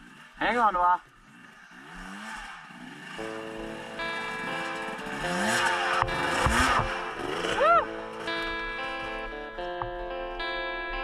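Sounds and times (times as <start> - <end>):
dirt bike engine revving: 0.0 - 11.0
background music: 3.1 - 11.0.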